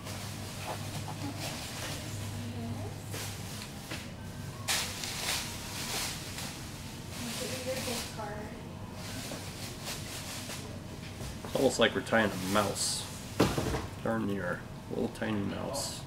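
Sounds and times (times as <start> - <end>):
faint indistinct voices: 0.6 - 13.1
soft rustling and brushing: 4.7 - 12.9.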